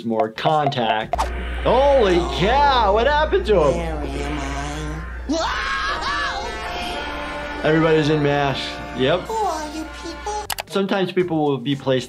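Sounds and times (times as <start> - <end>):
cartoon soundtrack music: 0.0 - 10.7.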